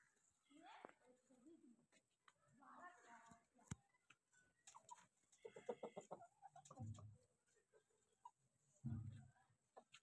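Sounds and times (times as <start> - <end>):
chickens clucking: 4.0 - 8.8.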